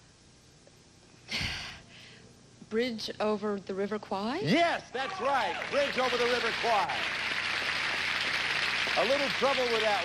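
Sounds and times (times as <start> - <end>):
studio audience applause: 5.0 - 10.0.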